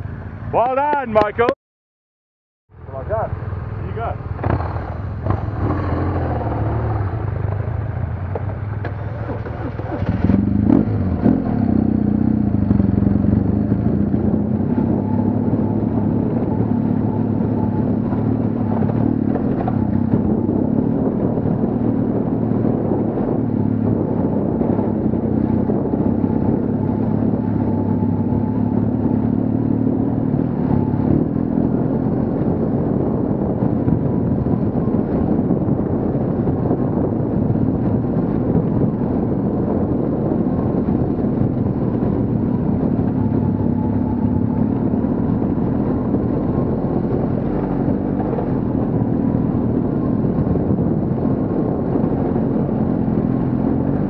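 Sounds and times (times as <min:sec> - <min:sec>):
motorcycle engine revving: 0:03.4 - 0:54.0.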